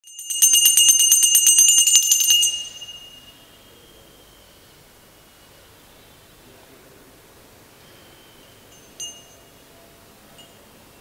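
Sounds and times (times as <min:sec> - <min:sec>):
brass hand bell ringing: 0:00.0 - 0:03.4.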